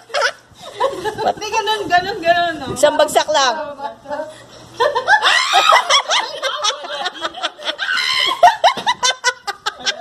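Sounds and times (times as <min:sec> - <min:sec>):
women laughing: 0:00.0 - 0:01.6, 0:04.8 - 0:10.0.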